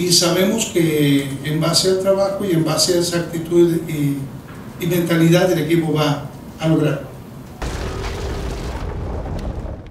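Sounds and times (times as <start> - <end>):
deep boom with low rumble: 7.6 - 9.9.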